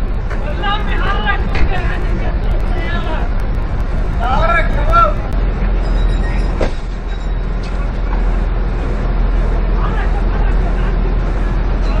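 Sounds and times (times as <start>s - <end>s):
faint men's voices: 0.0s - 12.0s
vehicle engine idling: 0.0s - 12.0s
sharp knock: 6.6s - 7.0s.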